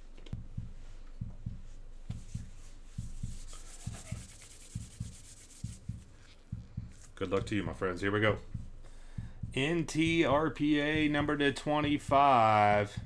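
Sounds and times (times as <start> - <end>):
faint low thumping: 0.2 - 13.0
rubber gloves rubbing and stretching: 1.6 - 7.3.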